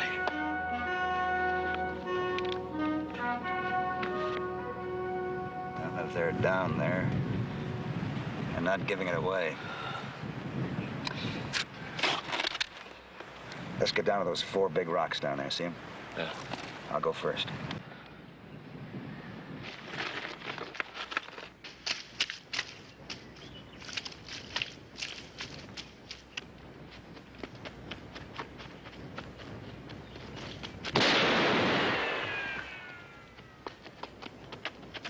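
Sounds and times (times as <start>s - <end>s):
gunshot: 30.9s - 32.9s
ricochet whine: 30.9s - 33.4s.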